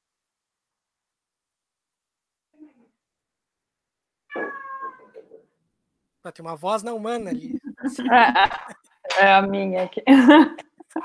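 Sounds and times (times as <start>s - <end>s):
cat meowing: 4.3s - 5.2s.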